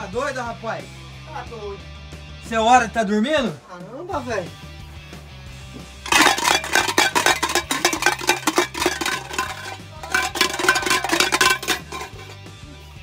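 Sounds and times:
background music: 0.0s - 13.0s
loud rapid banging and clattering: 6.1s - 12.4s.

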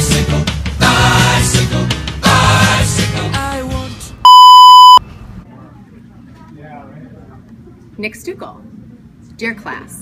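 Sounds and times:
electronic bleep tone: 4.2s - 5.0s.

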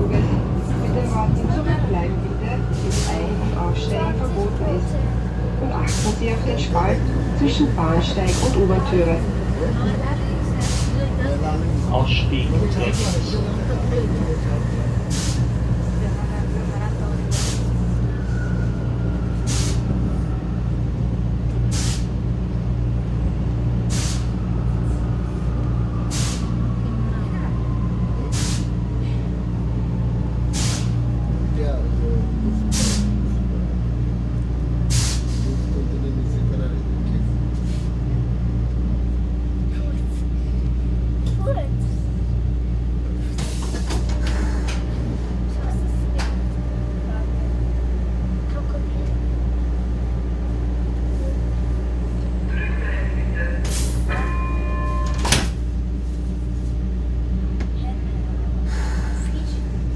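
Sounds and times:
train rumble and hum: 0.0s - 59.9s.

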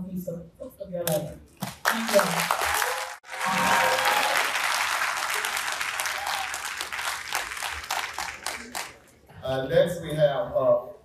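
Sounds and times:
audience applauding: 1.7s - 9.1s.

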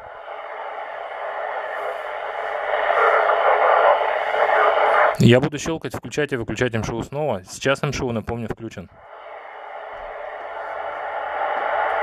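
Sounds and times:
radio static hiss: 0.0s - 5.3s, 9.1s - 12.0s.

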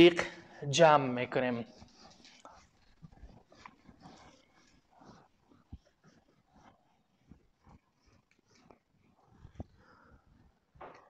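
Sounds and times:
eraser rubbing on whiteboard: 1.6s - 9.8s.

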